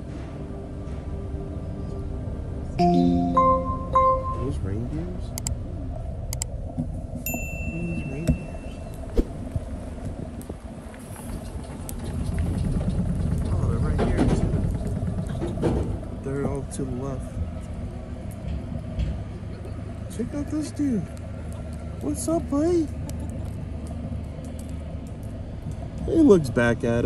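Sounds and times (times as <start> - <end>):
short electronic ping: 2.8 - 4.6.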